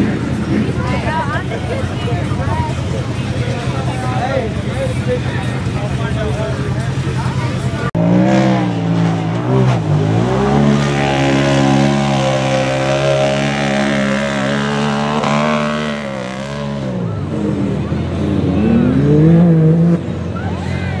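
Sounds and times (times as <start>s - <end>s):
utility vehicle engine revving: 0.0s - 21.0s.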